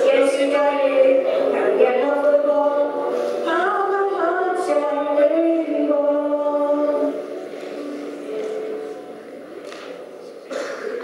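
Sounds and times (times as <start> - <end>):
girl and boy singing over pa: 0.0 - 8.9.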